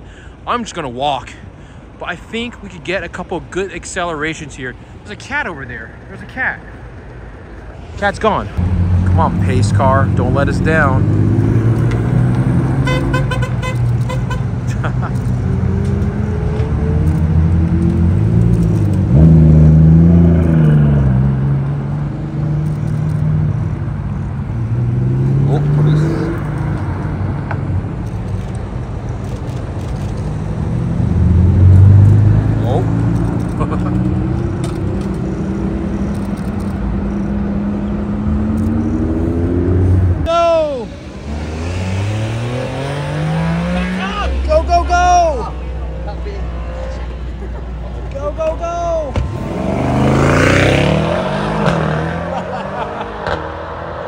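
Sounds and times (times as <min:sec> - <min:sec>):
car engines revving and accelerating: 0:07.4 - 0:48.4, 0:49.1 - 0:54.0.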